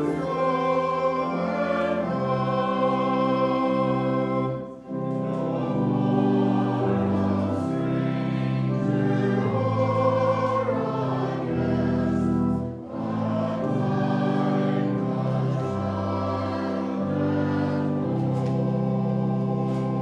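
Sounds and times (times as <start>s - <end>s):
organ chords: 0.0s - 20.0s
voices singing a hymn: 0.0s - 20.0s.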